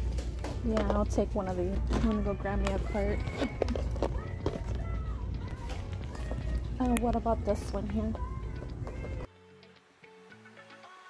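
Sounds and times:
low steady hum: 0:00.0 - 0:09.3.

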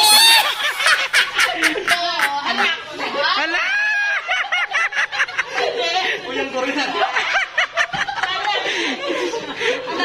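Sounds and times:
woman squealing: 0:00.0 - 0:00.8
woman laughing: 0:00.0 - 0:06.0.

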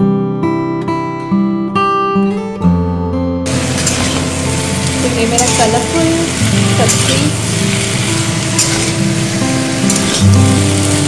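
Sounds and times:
acoustic guitar music: 0:00.0 - 0:11.0
vegetables sizzling in hot oil: 0:03.5 - 0:11.0.

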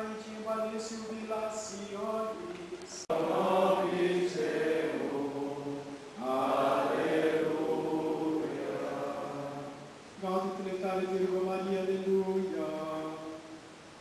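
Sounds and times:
group chanting in unison: 0:03.1 - 0:10.0.

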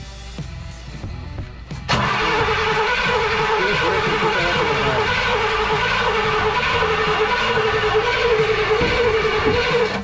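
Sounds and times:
starter motor cranking engine: 0:01.9 - 0:10.0.

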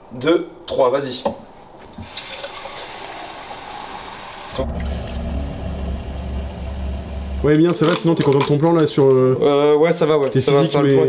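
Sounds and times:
steady hiss: 0:03.0 - 0:07.6
low hum with deep drone: 0:04.5 - 0:07.6.

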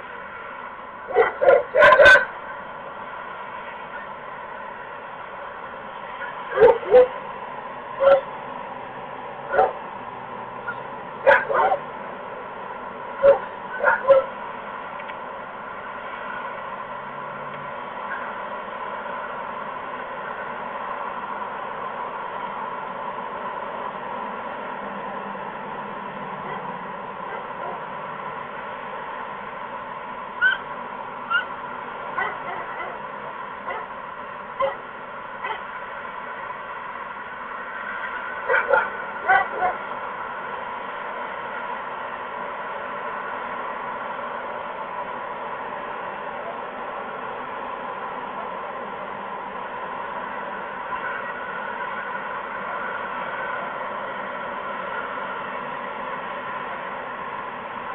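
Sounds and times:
steady background hum: 0:00.0 - 0:57.9
barn owl calling: 0:30.4 - 0:30.7.

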